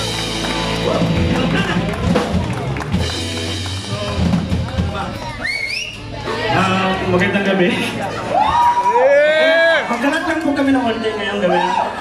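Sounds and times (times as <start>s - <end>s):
drum kit: 0.0s - 7.2s
live rock band playing: 0.0s - 8.7s
high rising whoop: 8.3s - 9.8s.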